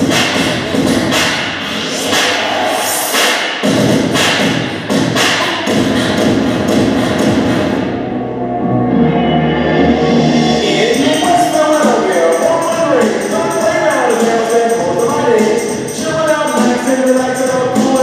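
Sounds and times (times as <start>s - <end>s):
dance music over loudspeakers: 0.0s - 8.0s, 10.0s - 18.0s.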